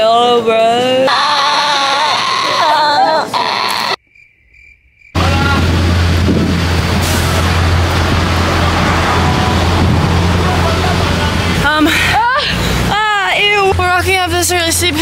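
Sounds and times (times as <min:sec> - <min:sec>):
traffic drone: 0:05.1 - 0:15.0
wind on microphone: 0:05.6 - 0:10.4.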